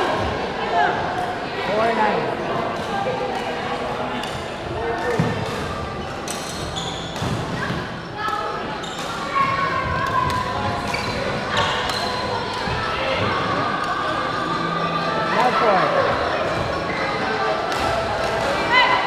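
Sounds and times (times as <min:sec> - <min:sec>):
shoes squeaking: 0:06.0 - 0:08.0, 0:08.7 - 0:13.0
echoing voices: 0:07.4 - 0:19.0.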